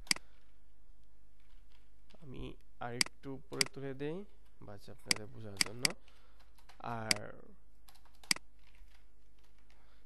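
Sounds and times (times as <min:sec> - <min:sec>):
computer input clicks: 0:05.0 - 0:07.3, 0:07.9 - 0:08.5.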